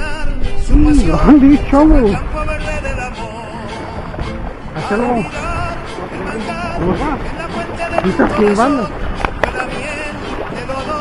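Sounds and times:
faint background music: 0.0 - 11.0
rough water noise: 0.0 - 11.0
fish thrashing and splashing: 3.8 - 11.0.

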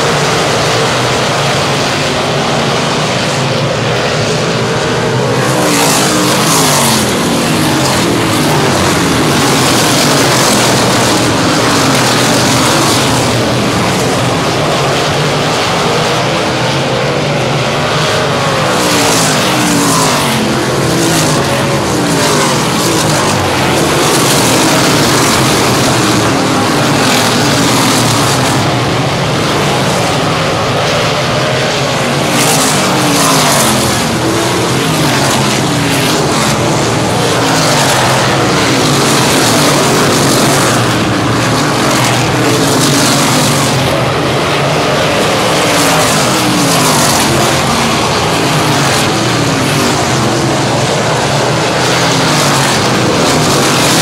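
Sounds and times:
racing car engines passing: 0.0 - 54.0.

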